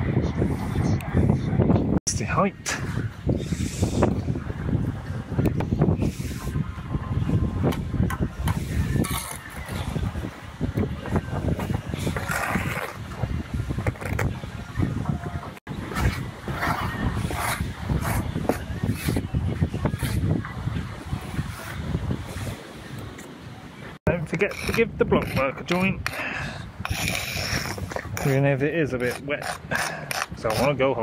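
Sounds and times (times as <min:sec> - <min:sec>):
wind buffeting microphone: 0:00.0 - 0:31.0
trowel scraping mortar: 0:24.2 - 0:30.8.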